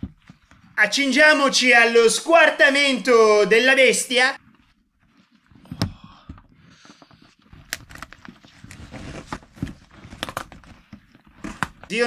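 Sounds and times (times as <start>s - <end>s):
handling rustles: 6.7s - 11.9s.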